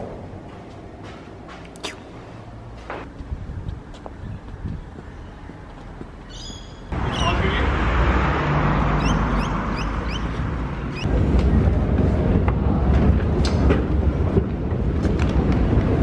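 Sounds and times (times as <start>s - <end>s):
traffic rumble: 0.0s - 16.0s.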